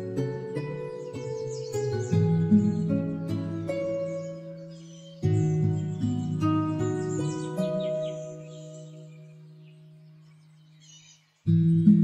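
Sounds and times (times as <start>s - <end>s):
relaxing background music: 0.0s - 12.0s
high bird chirps: 0.4s - 12.0s.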